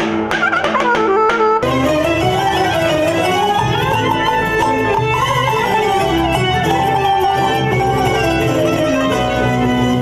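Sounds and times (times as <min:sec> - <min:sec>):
folk dance music with strings: 0:00.0 - 0:10.0.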